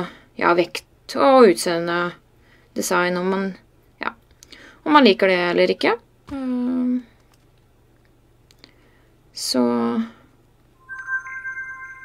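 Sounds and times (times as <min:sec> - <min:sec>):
smartphone unlock chime: 0:10.8 - 0:12.0.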